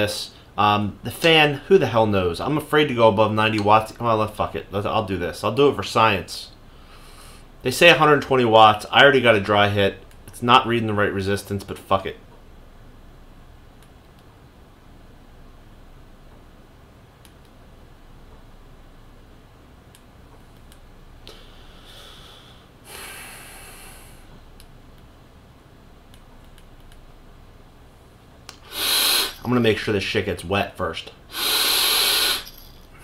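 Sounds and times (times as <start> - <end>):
person breathing out: 21.3 - 24.3, 28.6 - 29.4, 31.3 - 32.8.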